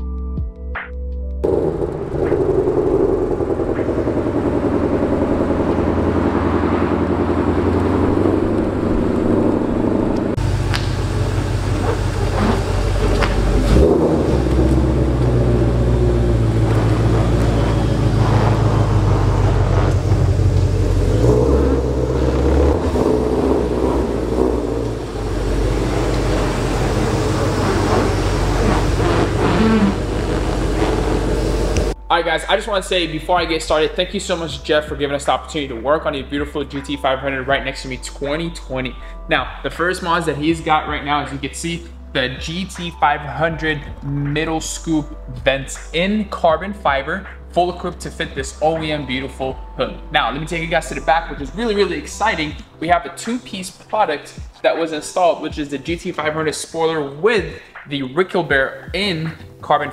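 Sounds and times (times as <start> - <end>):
deep car exhaust rumble: 1.4 - 52.9.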